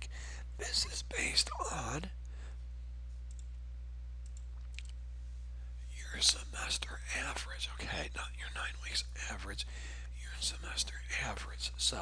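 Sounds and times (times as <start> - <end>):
low electrical hum: 0.0 - 12.0
man talking: 0.6 - 2.2, 5.9 - 12.0
faint clicks: 3.1 - 3.6, 4.2 - 5.0.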